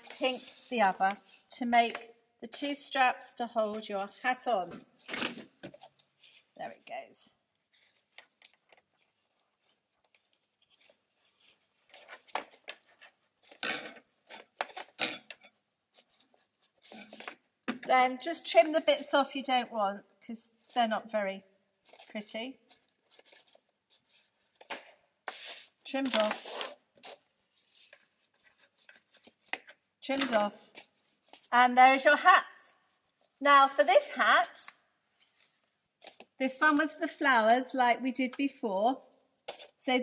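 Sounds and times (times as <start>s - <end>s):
paper rustling: 7.7s - 13.6s, 21.8s - 29.8s.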